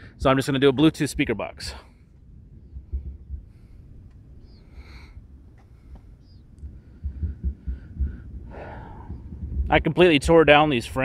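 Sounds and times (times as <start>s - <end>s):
microphone handling thumps: 2.2s - 4.2s, 5.5s - 9.9s.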